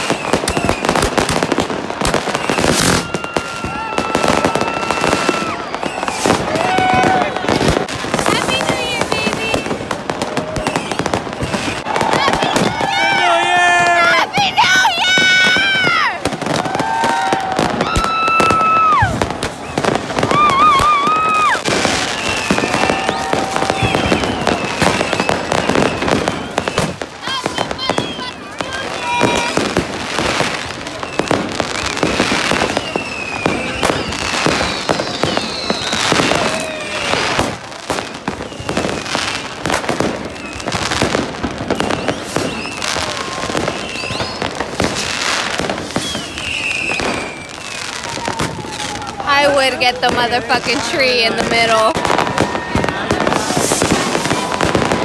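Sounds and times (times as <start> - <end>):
crowd voices: 0.0 - 55.0
fireworks bangs and crackles: 0.0 - 55.0
fireworks whistles: 0.0 - 55.0.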